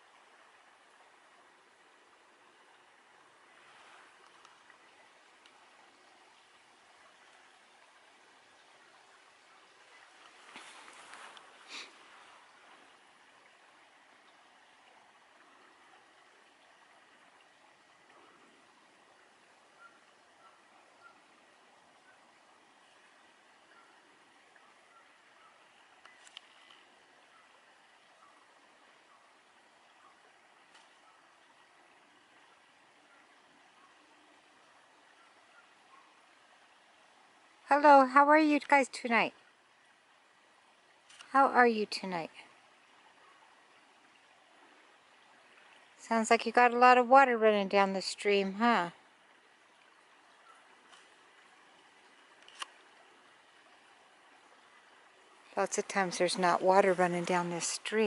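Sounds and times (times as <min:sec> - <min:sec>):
small stream rushing: 0:00.0 - 0:58.0.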